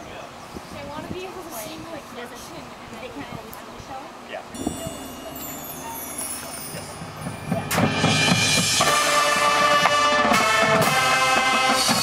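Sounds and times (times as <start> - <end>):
faint outdoor ambience: 0.0 - 12.0
marching band playing: 4.7 - 12.0
low drum hits: 6.8 - 10.0
cymbal crash: 6.8 - 12.0.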